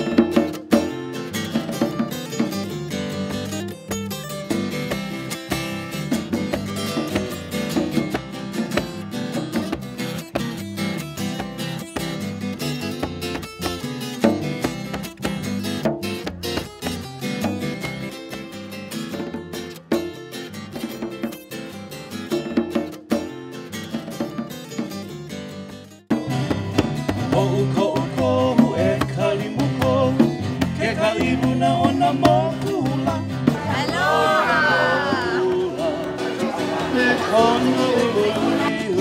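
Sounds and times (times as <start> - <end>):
plucked acoustic guitar: 0.0 - 39.0
person singing: 27.2 - 39.0.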